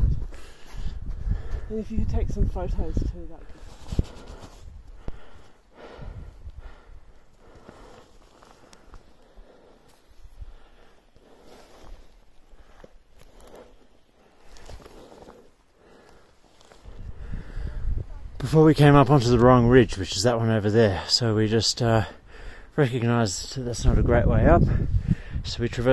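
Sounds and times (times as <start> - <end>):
wind buffeting microphone: 0.0 - 7.5, 16.8 - 18.5, 23.7 - 25.9
climber breathing: 0.1 - 1.7, 3.4 - 18.1, 22.0 - 22.7, 24.8 - 25.4
footsteps on snow: 3.4 - 5.6, 7.2 - 16.9.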